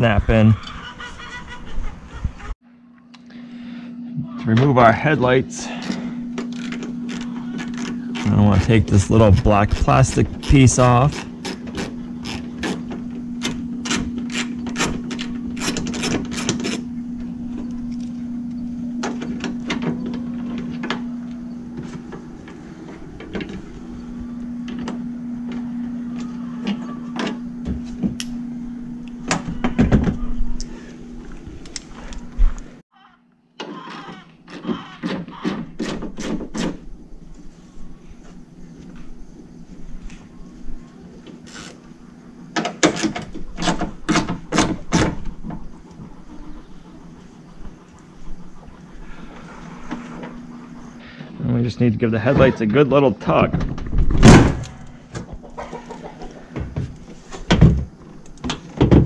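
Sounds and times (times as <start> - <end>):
steady low hum: 0.0 - 33.4, 35.6 - 59.0.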